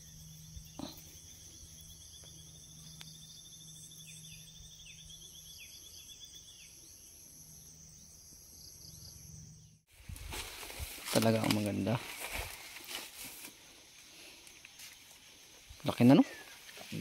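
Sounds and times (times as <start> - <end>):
insects buzzing and trilling: 0.0 - 17.0
rustling noise: 9.9 - 13.6.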